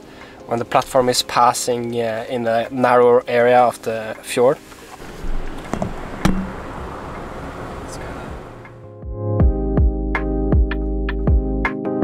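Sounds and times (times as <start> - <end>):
car interior road and engine rumble: 4.9 - 8.8.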